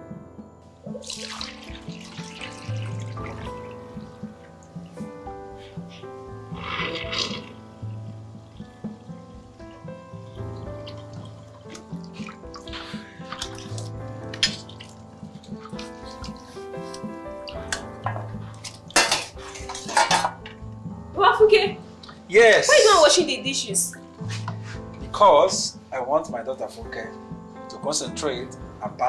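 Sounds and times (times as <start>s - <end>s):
background music: 0.0s - 29.0s
water splashing in sink: 0.9s - 5.1s, 6.5s - 20.4s
plates clinking: 17.6s - 20.6s.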